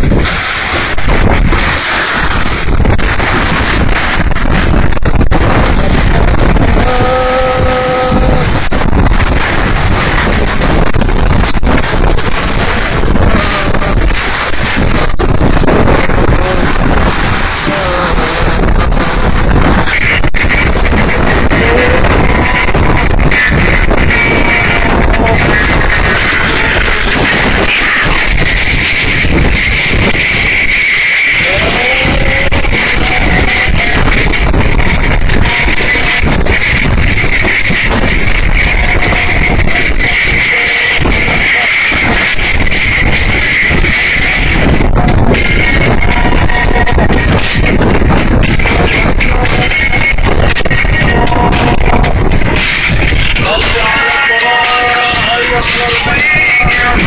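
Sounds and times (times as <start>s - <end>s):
high-pitched whine: 0.0s - 57.0s
wind blasting against microphone: 0.0s - 57.0s.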